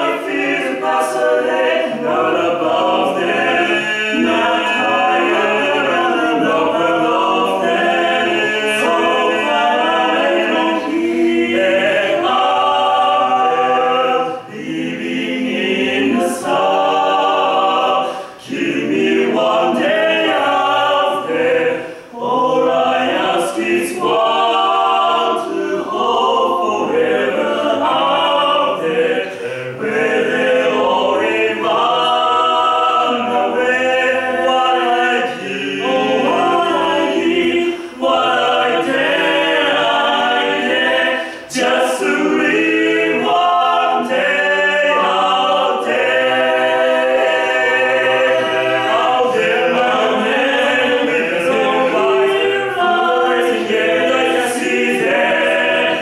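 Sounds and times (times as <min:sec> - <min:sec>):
male quartet singing a cappella: 0:00.0 - 0:56.0.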